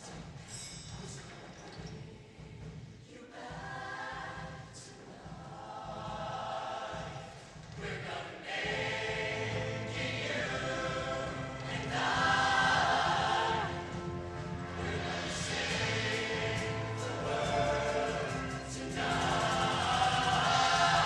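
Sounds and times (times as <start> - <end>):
choir singing held chords: 1.9 - 21.0.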